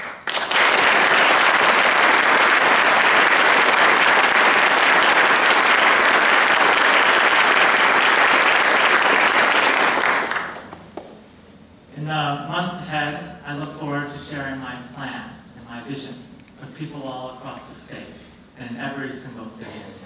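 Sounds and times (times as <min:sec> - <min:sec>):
audience applauding: 0:00.0 - 0:10.8.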